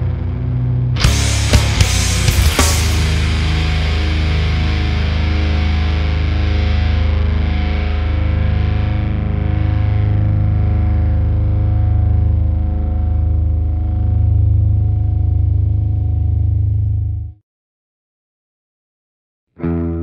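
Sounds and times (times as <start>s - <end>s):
distorted guitars holding chord: 0.0s - 17.3s, 19.6s - 20.0s.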